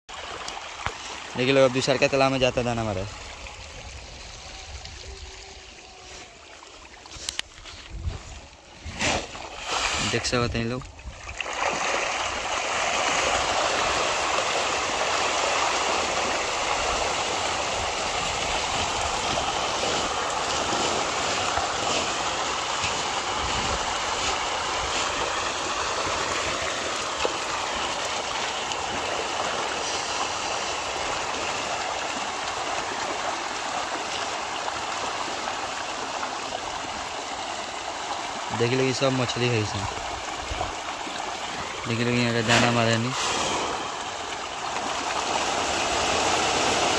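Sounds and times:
fish splashing at surface: 3.1s - 37.0s, 39.8s - 46.9s.

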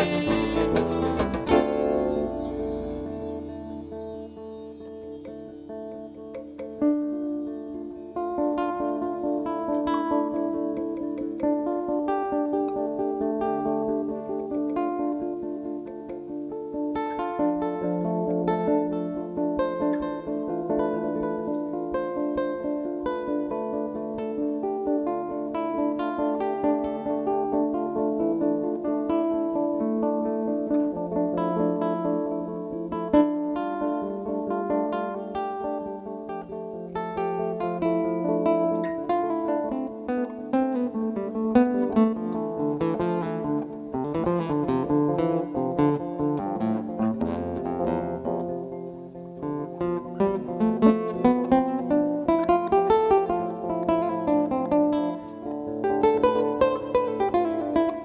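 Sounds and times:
bass line: 0.0s - 3.2s
acoustic guitars picking and strumming: 0.0s - 58.0s.

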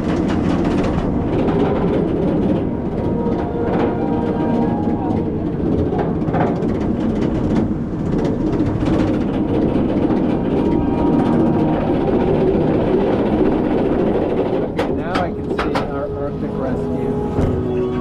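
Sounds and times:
roller coaster lift chain rattle: 0.0s - 18.0s.

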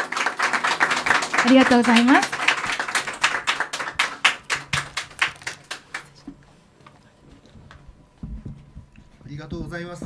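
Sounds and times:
people clapping: 0.0s - 6.5s.

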